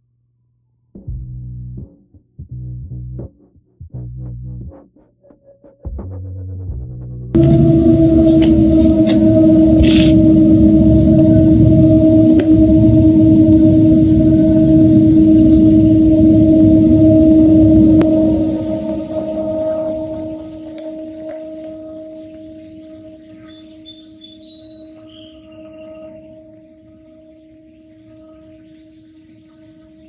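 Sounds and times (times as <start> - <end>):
steady droning tone: 7.0 - 30.0
loud rumbling: 7.3 - 27.5
faint high chirps: 18.0 - 30.0.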